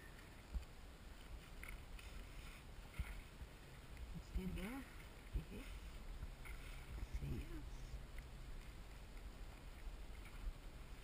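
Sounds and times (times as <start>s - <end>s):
steady low rumble: 0.0s - 11.0s
water lapping against board: 0.2s - 11.0s.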